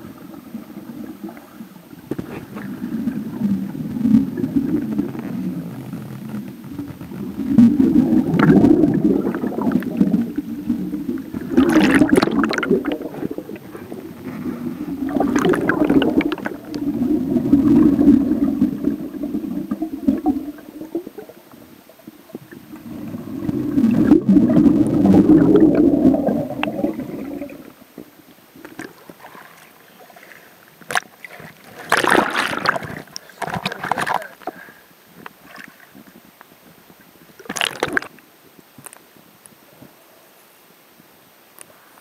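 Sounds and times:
underwater exhaust bubbles rumbling: 0:00.0 - 0:30.1, 0:30.8 - 0:34.3
bubbling and splashing bursts: 0:02.0 - 0:28.1, 0:30.9 - 0:34.3, 0:37.4 - 0:38.1.

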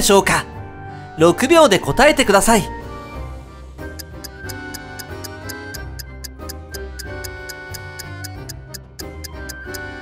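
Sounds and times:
countdown music with ticking: 0:02.7 - 0:10.0.

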